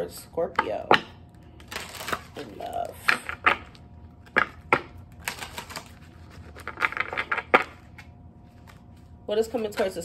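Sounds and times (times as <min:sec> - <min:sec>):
cards being shuffled: 0:01.6 - 0:09.2.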